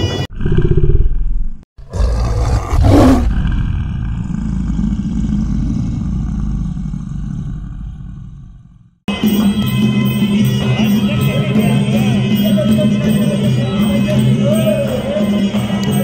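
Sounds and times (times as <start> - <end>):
deep growling roar: 0.4 - 9.0
long low rumble: 3.3 - 9.0.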